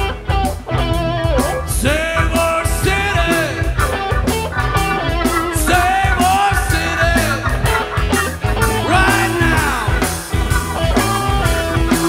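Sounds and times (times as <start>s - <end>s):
bass guitar: 0.0s - 12.0s
drums: 0.0s - 12.0s
guitars: 0.0s - 12.0s.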